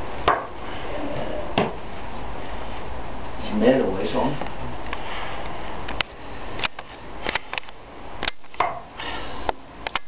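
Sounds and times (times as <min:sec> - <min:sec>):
man breathing forcefully through nose: 0:04.9 - 0:07.0, 0:08.9 - 0:09.8.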